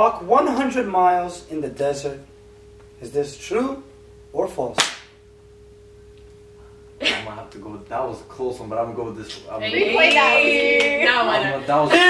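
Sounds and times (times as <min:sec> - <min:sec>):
faint electrical whine: 0:00.0 - 0:12.0.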